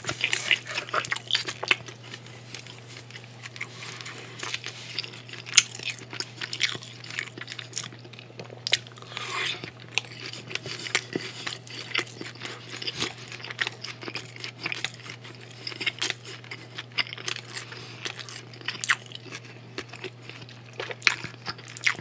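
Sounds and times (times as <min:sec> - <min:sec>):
close chewing and biting: 0:00.0 - 0:22.0
steady low hum: 0:00.0 - 0:22.0.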